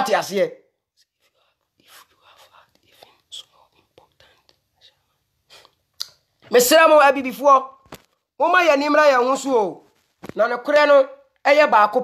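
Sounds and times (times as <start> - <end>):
man whispering: 1.0 - 5.8.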